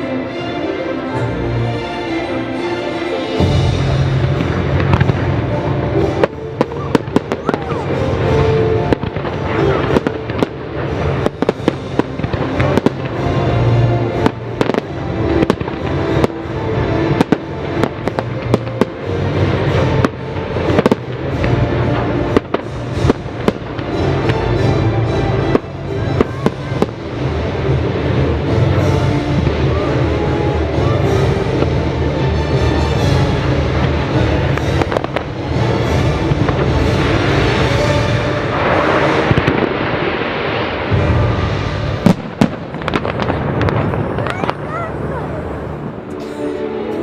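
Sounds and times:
music: 0.0s - 47.0s
fireworks bangs and crackles: 3.4s - 47.0s
low rumble: 3.4s - 47.0s.

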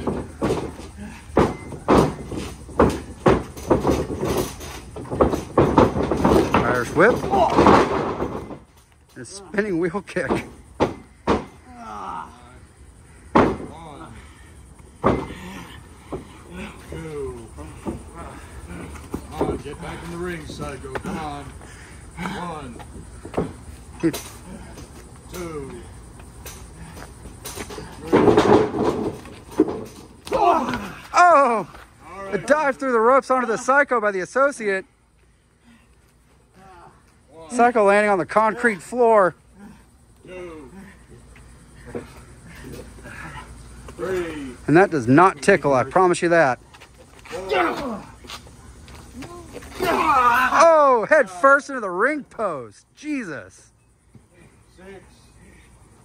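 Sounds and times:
bodies thudding on ring boards: 0.0s - 9.1s, 10.1s - 12.4s, 13.0s - 14.0s, 14.8s - 21.5s, 22.2s - 32.6s.

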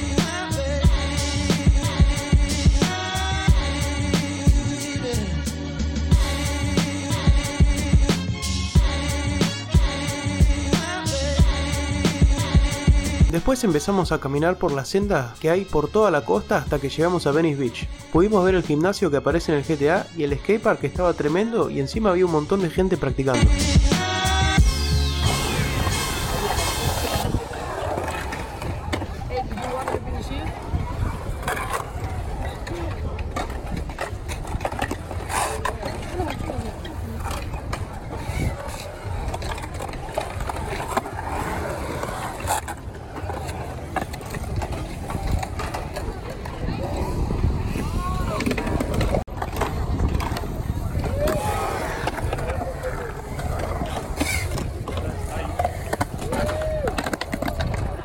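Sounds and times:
skateboard wheels rolling on concrete: 0.0s - 58.0s
crowd chatter: 23.3s - 58.0s
voices: 25.6s - 58.0s
skateboards clacking on concrete: 25.7s - 58.0s.

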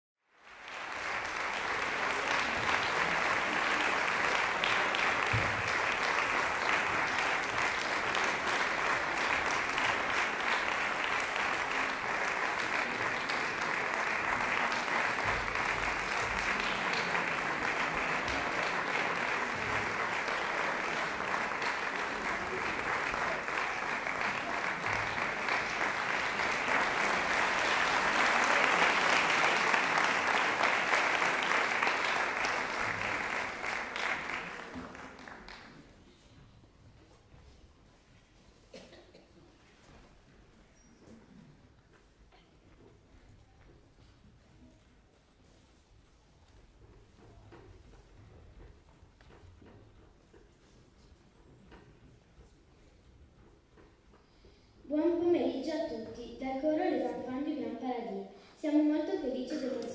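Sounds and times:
audience applauding: 0.3s - 36.0s, 42.7s - 55.0s.

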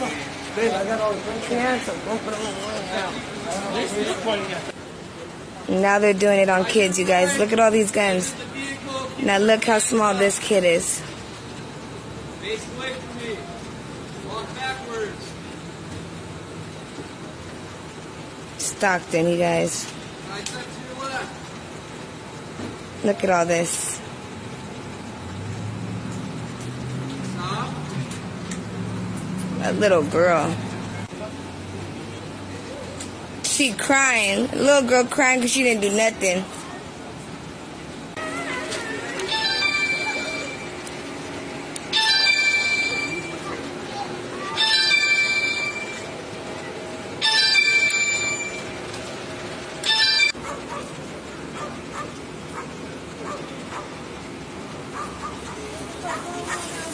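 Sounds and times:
vehicle engines idling: 0.0s - 45.4s, 48.6s - 56.9s
dog barking: 50.4s - 50.9s, 51.6s - 54.0s, 54.9s - 56.8s.

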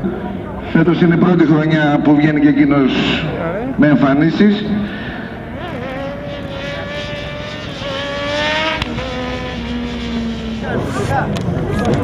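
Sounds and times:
voices: 0.0s - 7.9s
racing motorcycle engine revving: 3.2s - 12.0s.

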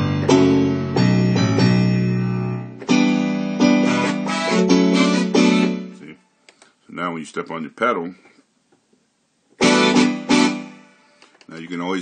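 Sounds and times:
loud synthesizer chord: 0.0s - 6.0s, 9.6s - 11.0s.

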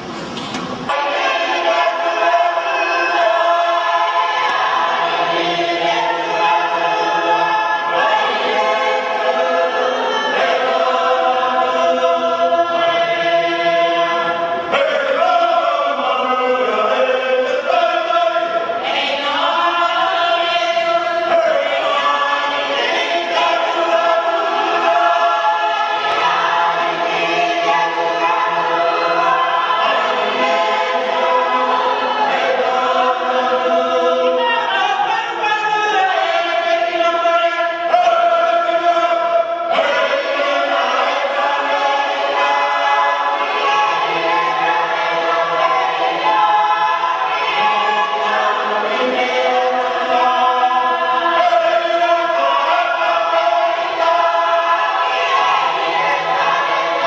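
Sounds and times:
unaccompanied choir singing: 0.8s - 57.0s.

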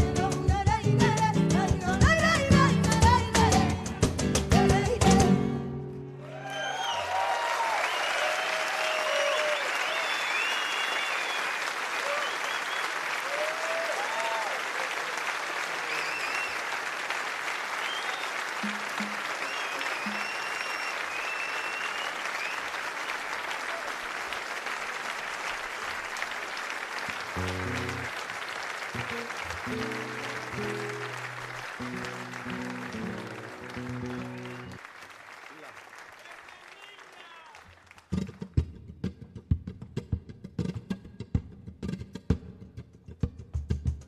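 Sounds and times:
audience applauding: 6.0s - 38.6s
audience cheering: 6.1s - 38.0s
nylon-string guitar playing: 27.3s - 28.1s, 29.0s - 34.8s.

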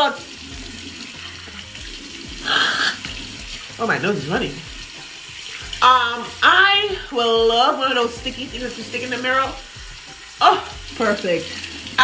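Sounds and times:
sink tap running: 0.0s - 12.0s
water splashing on face: 0.0s - 12.0s.

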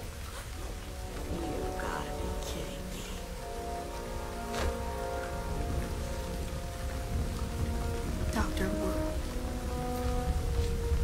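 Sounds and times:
film score music: 0.0s - 11.0s
heavy rain falling: 0.0s - 11.0s.

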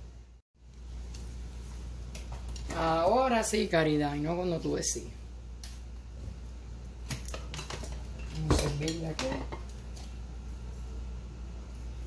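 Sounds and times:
kitchen things clicking on a counter: 7.1s - 10.1s.

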